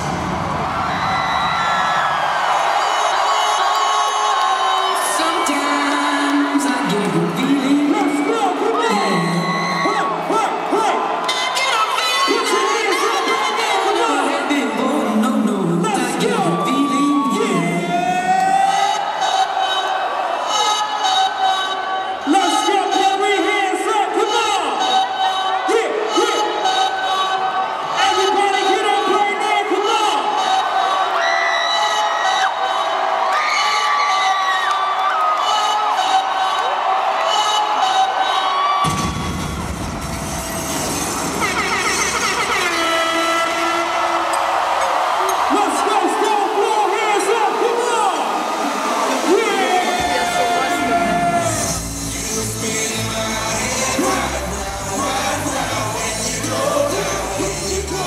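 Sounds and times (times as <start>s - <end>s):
heavy bass: 0.0s - 1.8s, 50.0s - 58.0s
crowd cheering: 0.0s - 58.0s
live music over arena speakers: 0.0s - 58.0s.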